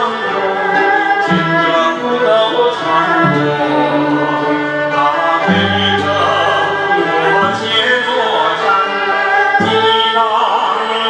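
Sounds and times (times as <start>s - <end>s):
hammered dulcimer: 0.0s - 10.7s
man singing into a microphone: 0.0s - 11.0s
traditional instrument ensemble: 0.0s - 11.0s.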